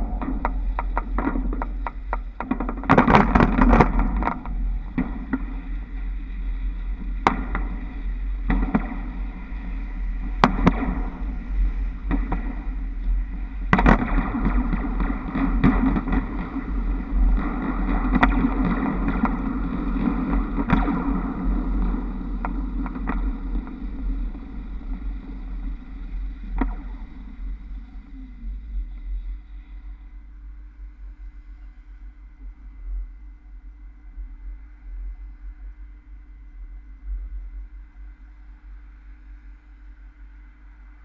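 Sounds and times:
wind rumble on moving trolleybus: 0.0 - 0.8.

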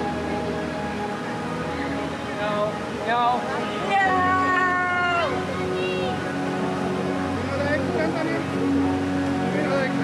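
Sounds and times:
murmur of guests: 0.0 - 10.0.

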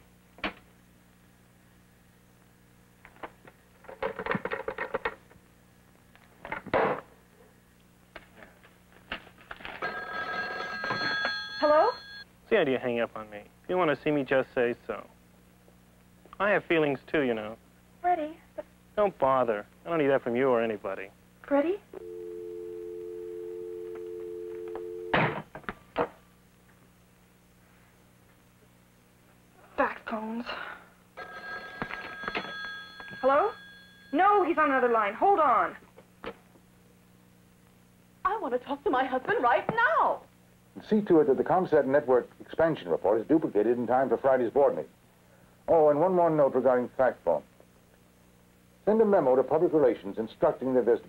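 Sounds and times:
telephone bell ringing: 9.8 - 12.3, 22.0 - 25.1, 31.2 - 34.3.

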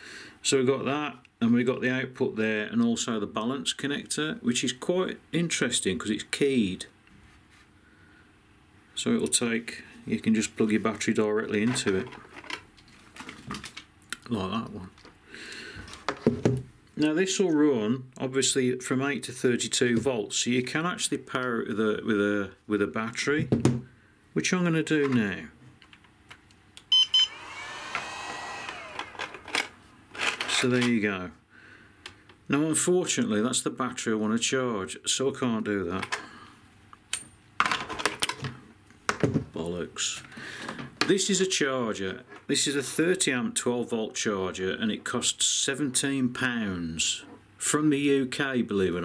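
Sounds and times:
hands handling plastic charger: 28.7 - 31.0.

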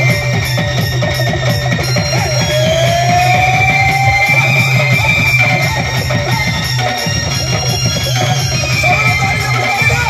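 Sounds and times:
busy drum rhythm: 0.0 - 10.0
folk song over loudspeakers: 0.0 - 10.0.

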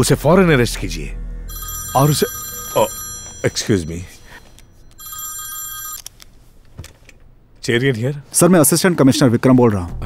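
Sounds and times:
mobile phone ringtone: 1.5 - 6.1.

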